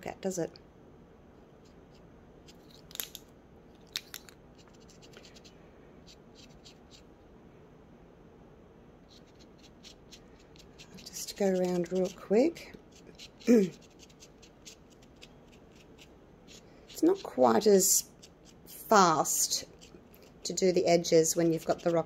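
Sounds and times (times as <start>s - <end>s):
paint marker scratching and tapping: 9.1s - 22.0s.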